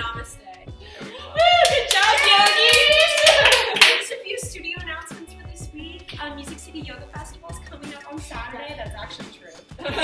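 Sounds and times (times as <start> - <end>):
excited voices: 1.0 - 4.4
group clapping hands: 1.3 - 4.2.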